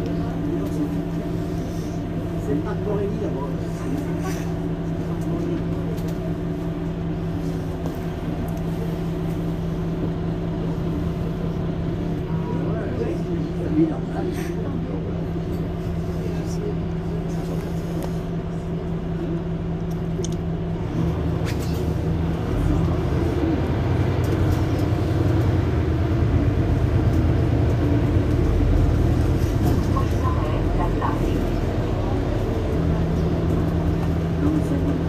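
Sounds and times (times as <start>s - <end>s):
bus engine running: 0.0s - 35.0s.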